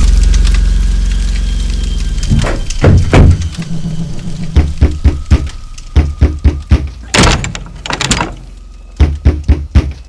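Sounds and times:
low rumble: 0.0s - 9.6s.

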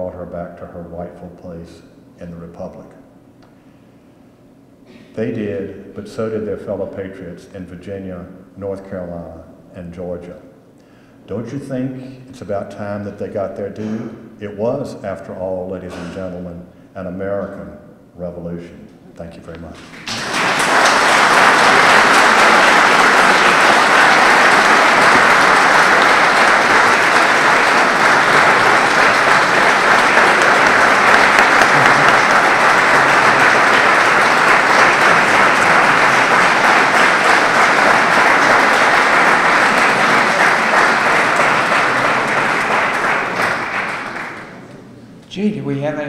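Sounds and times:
audience applauding: 19.8s - 44.7s.

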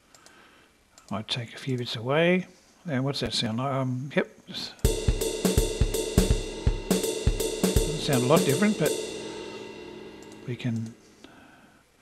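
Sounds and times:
swung jazz drum loop: 4.8s - 11.3s.

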